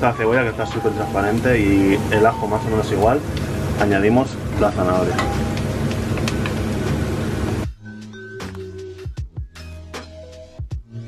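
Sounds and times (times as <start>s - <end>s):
vegetables sizzling in oil: 0.0s - 7.7s
quiet background music: 0.0s - 11.0s.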